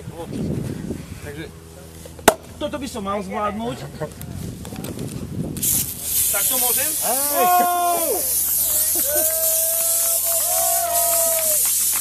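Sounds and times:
champagne spraying hiss: 5.6s - 12.0s.

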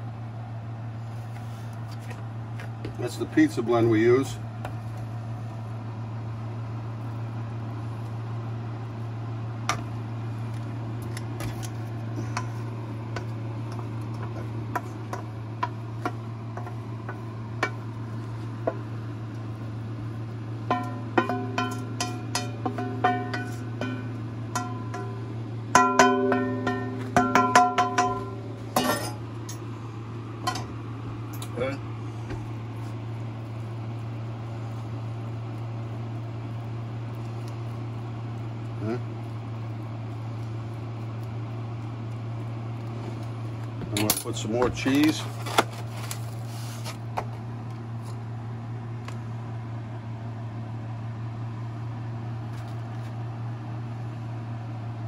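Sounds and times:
steady low hum: 0.0s - 55.0s
wooden spoon knocking on skillet: 13.1s - 17.9s, 20.7s - 25.2s, 25.8s - 29.0s.

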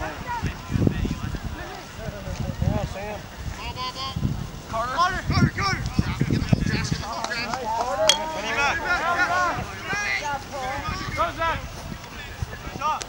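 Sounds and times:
people shouting: 7.4s - 11.5s.

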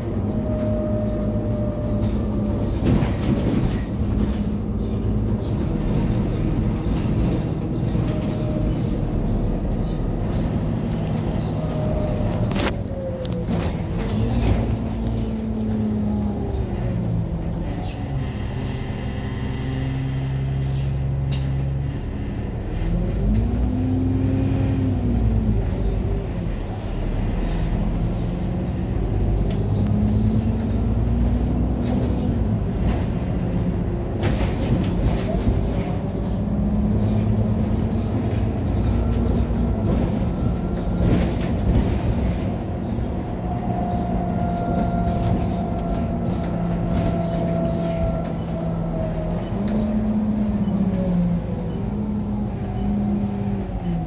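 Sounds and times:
bus engine rumble and whine: 0.0s - 54.0s.

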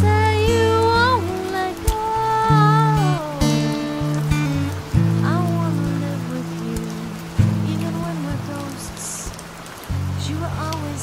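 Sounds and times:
acoustic guitar chords: 0.0s - 9.3s
rain hissing: 0.0s - 11.0s.

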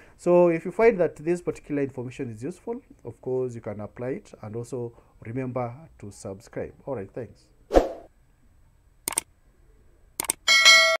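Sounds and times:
mouse double clicks: 9.1s - 9.3s, 10.2s - 10.4s
bell chime: 10.5s - 11.0s.

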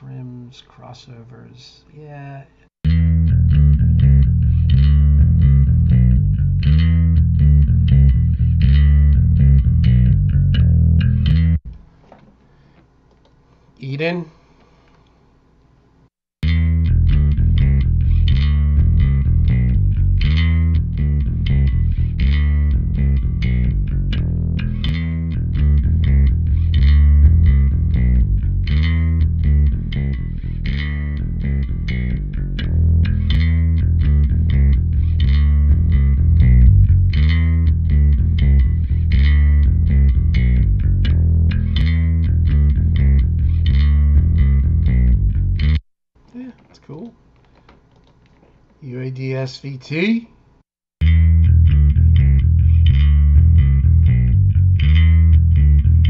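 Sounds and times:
electric bass line: 2.8s - 11.8s, 16.4s - 45.8s, 51.0s - 56.0s.

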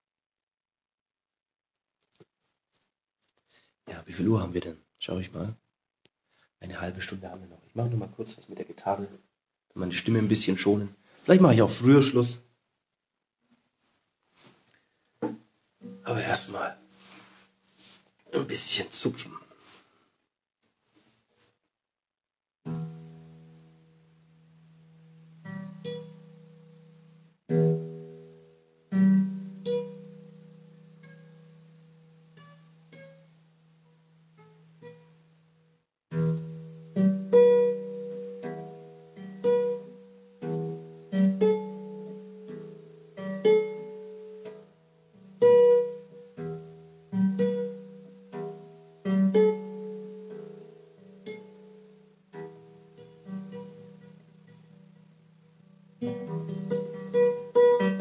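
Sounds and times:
guitar picked by hand: 15.2s - 19.8s, 36.1s - 58.0s.

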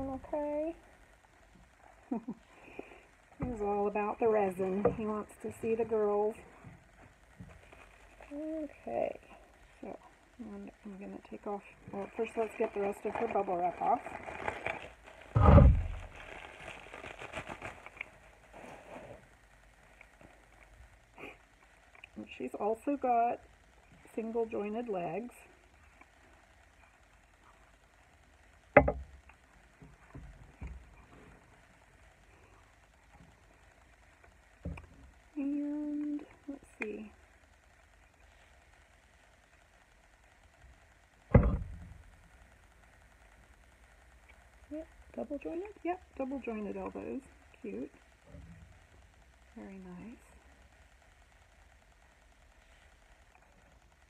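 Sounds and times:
bubble wrap crinkling: 0.0s - 54.0s
loud deep clunk: 15.4s - 15.9s, 41.3s - 41.8s.

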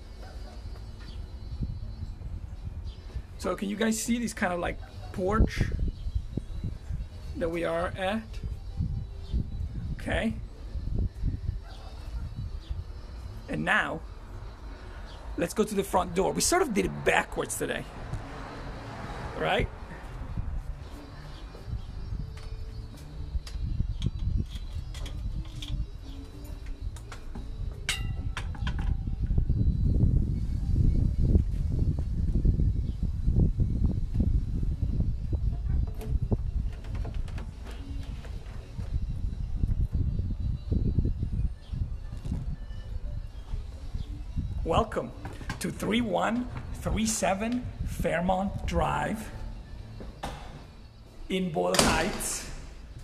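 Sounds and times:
low rumbling on microphone: 27.6s - 44.9s
metallic clink with ringing: 27.9s - 28.4s.

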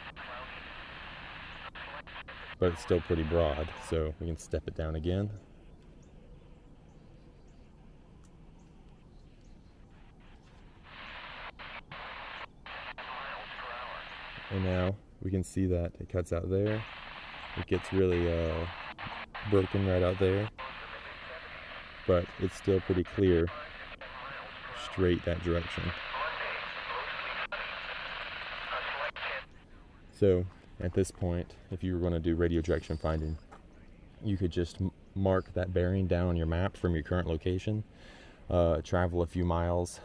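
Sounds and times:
radio static hiss: 0.0s - 5.1s, 9.7s - 40.0s
weak weather radio signal: 0.0s - 6.0s, 7.6s - 40.0s.

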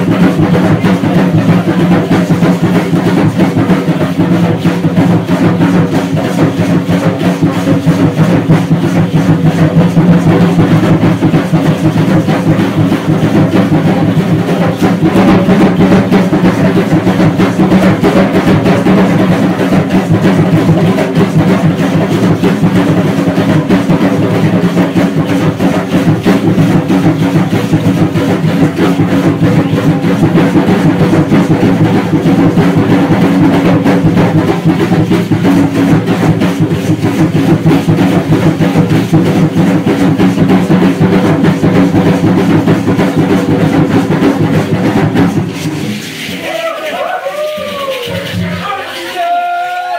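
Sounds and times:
drumming with steady beat: 0.0s - 49.9s
rattling percussion: 0.0s - 49.9s.

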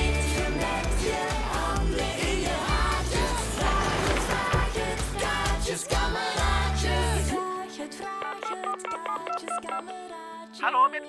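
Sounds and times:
phone keypad beeps: 8.2s - 9.9s.

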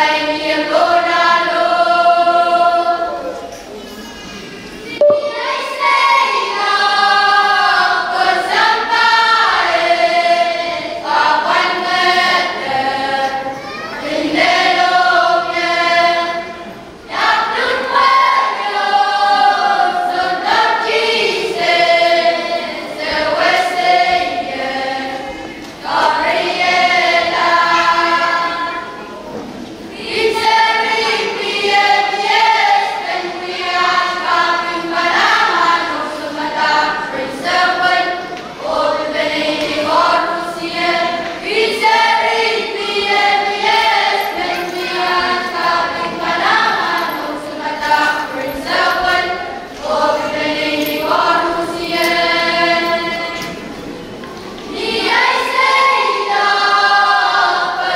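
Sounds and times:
boys choir singing: 0.0s - 3.7s, 4.8s - 57.9s.

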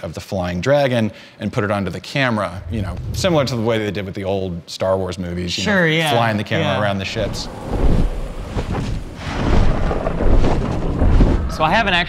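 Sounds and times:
wind rumble: 2.4s - 4.1s, 6.8s - 12.0s
thunder: 2.5s - 4.0s, 7.1s - 12.0s.

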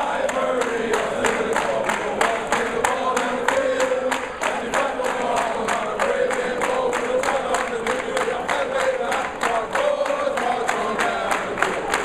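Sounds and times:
group singing in chorus: 0.0s - 12.0s
hands clapping in steady beat: 0.0s - 12.0s.

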